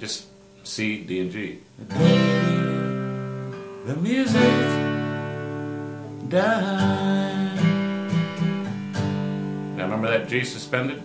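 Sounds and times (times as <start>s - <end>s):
acoustic guitar strumming: 0.0s - 11.0s
man singing: 1.8s - 5.2s, 6.1s - 8.2s.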